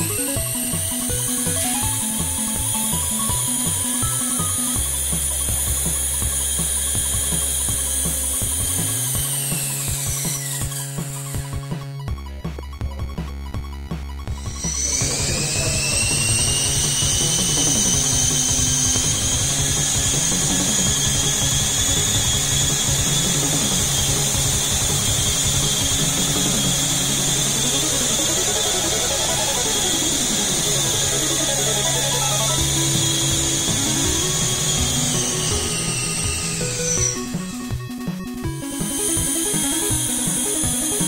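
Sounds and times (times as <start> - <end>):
micro helicopter rotor whining: 0.0 - 13.0, 14.1 - 41.0
electronic background music: 0.0 - 41.0.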